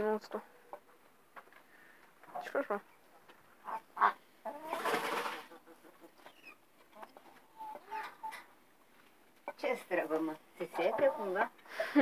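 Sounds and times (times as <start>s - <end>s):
hens clucking: 0.3s - 12.0s.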